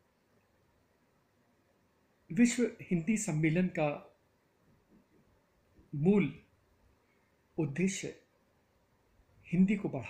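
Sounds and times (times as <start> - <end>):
faint small sounds: 0.0 - 10.0
man speaking: 2.3 - 4.2, 5.9 - 6.5, 7.6 - 8.3, 9.4 - 10.0.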